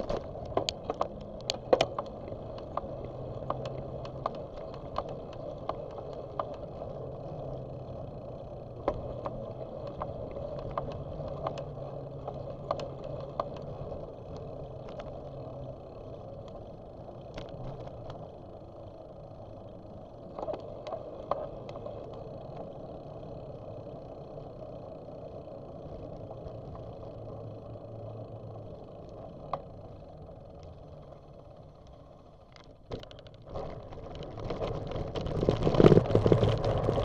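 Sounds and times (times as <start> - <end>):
bike clicks and rattles: 0.0 - 37.0
tyres rolling on asphalt: 0.0 - 37.0.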